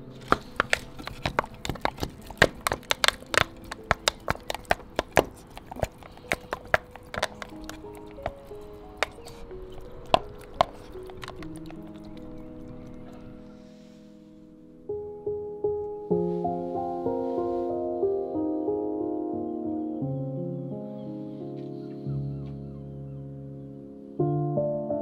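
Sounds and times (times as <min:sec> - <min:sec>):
soft background music: 0:00.0 - 0:25.0
gull beak clattering on plastic tub: 0:00.2 - 0:12.4.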